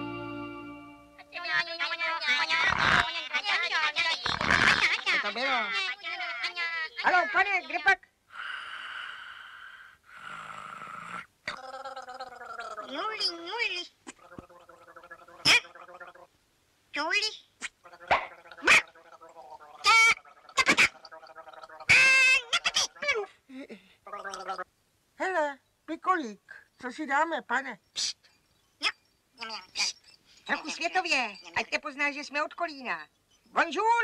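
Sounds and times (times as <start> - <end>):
cartoon character vocal noises: 1.3 - 7.9, 11.5 - 16.3, 17.2 - 24.7, 28.8 - 32.1.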